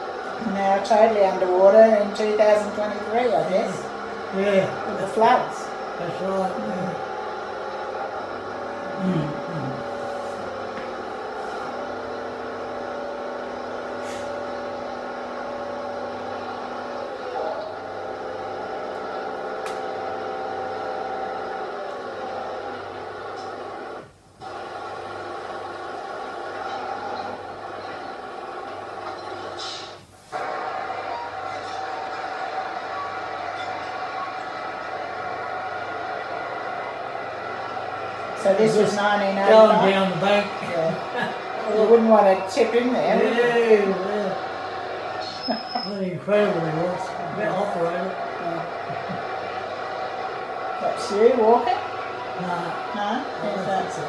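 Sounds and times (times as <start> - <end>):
diesel engines droning: 0.0 - 54.0.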